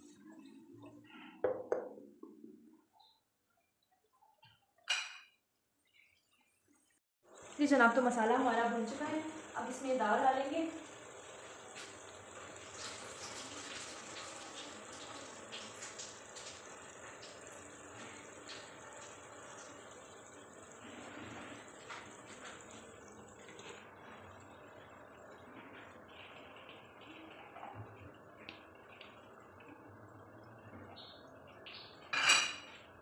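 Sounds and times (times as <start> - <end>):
sauce bubbling and sizzling in oil: 5.8 - 33.0.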